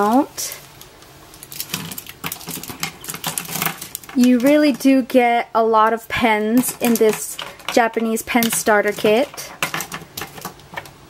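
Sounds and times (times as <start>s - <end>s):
plastic pens clicking on table: 6.6s - 10.9s.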